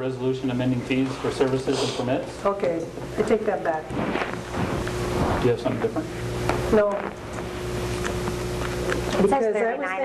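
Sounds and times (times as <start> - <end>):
low rumble and hum: 3.6 - 9.2.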